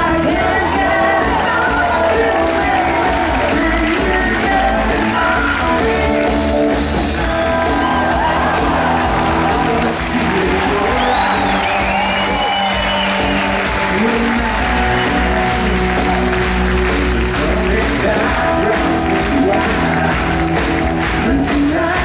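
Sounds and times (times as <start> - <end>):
audience cheering and whooping: 0.0 - 5.8, 7.2 - 21.9
live rock band playing: 0.0 - 22.0.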